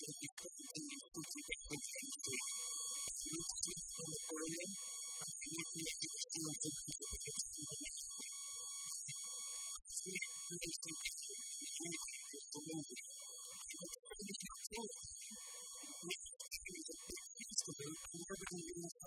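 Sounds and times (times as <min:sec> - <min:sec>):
man talking muffled: 0:00.0 - 0:02.5, 0:03.2 - 0:08.0, 0:09.9 - 0:13.0, 0:13.6 - 0:19.0.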